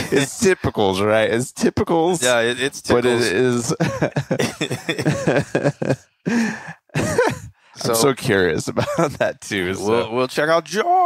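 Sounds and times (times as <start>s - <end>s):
men laughing: 0.0s - 0.5s, 3.4s - 7.5s, 8.7s - 9.4s.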